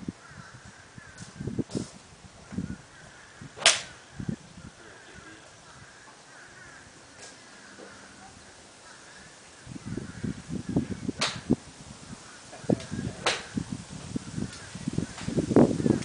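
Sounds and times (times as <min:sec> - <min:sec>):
wind buffeting microphone: 0:00.0 - 0:16.0
golf clubs striking balls: 0:03.5 - 0:04.1, 0:07.0 - 0:08.3, 0:11.1 - 0:11.6, 0:12.5 - 0:13.6, 0:14.5 - 0:15.4.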